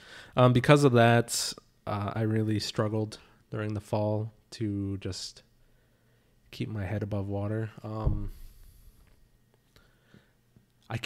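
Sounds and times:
man speaking: 0.4s - 5.5s, 6.5s - 8.4s.

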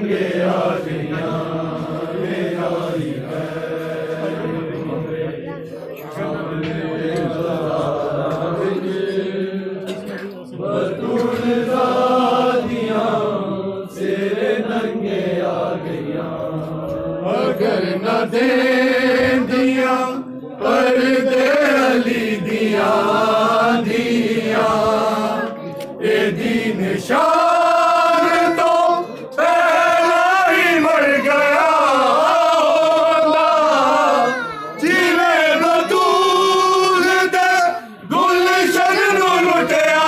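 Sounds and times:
men chanting a lament: 0.0s - 40.0s.

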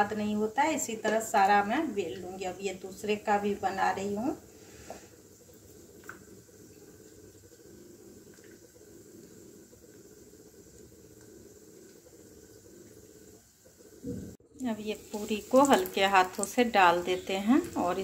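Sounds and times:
faint kitchen hiss: 0.0s - 18.0s.

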